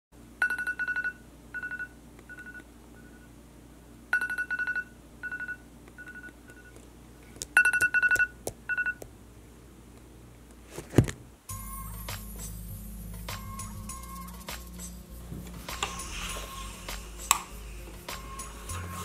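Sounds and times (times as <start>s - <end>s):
phone alarm beeping: 0.4s - 3.3s, 4.1s - 6.8s, 7.6s - 9.0s.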